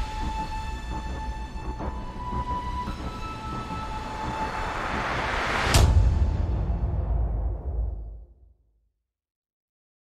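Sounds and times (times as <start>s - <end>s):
rising whoosh: 3.8s - 8.3s
sharp hit with deep boom: 5.4s - 8.5s.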